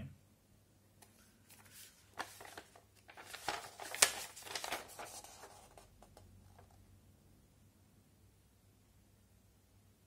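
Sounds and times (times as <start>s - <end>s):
paper booklet rustling: 1.0s - 6.8s.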